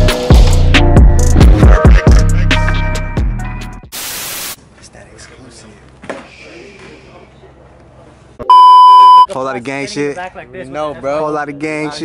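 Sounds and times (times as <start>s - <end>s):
background music: 0.0s - 3.8s
burst of static hiss: 3.9s - 4.6s.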